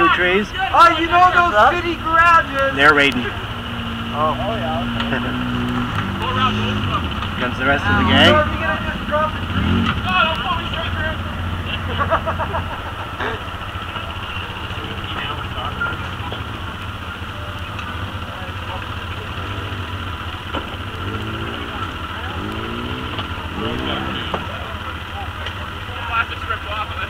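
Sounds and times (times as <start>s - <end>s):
engine idling: 0.0s - 27.0s.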